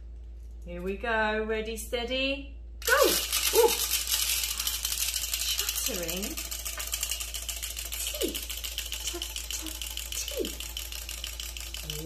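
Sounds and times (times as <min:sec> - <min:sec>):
clockwork motor whirring: 0:02.8 - 0:12.0
plastic toy jaws clattering: 0:02.8 - 0:12.0.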